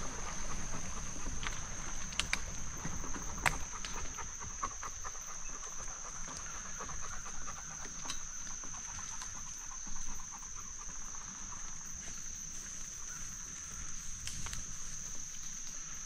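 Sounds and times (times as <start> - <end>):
bicycle tyres crackling over leaves: 0.0 - 4.4, 11.0 - 16.0.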